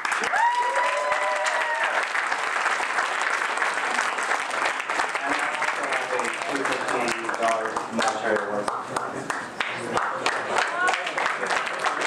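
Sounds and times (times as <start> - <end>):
audience applauding: 0.0 - 12.0
person cheering: 0.2 - 2.0.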